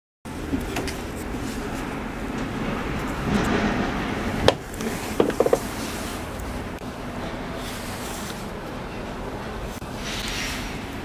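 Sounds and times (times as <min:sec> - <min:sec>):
city bus engine running: 0:00.3 - 0:11.0.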